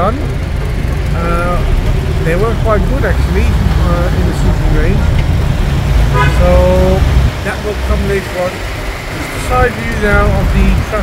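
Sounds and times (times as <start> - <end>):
vehicle rumble from inside: 0.0 - 11.0
vehicle horn: 6.1 - 6.8.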